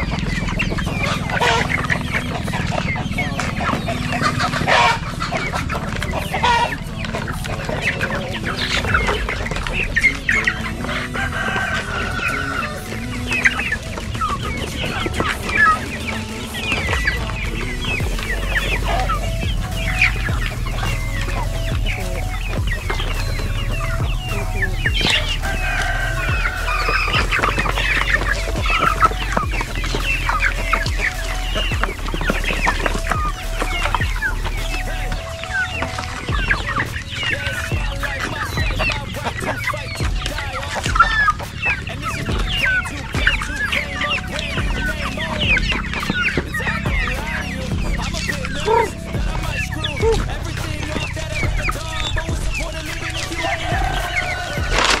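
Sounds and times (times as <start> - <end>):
chickens clucking: 0.0 - 55.0.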